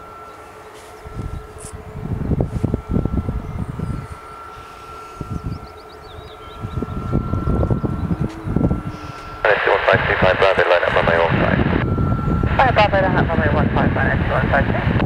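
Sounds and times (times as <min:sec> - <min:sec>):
distant jet engines whining: 0:00.0 - 0:15.0
wind buffeting microphone: 0:00.9 - 0:15.0.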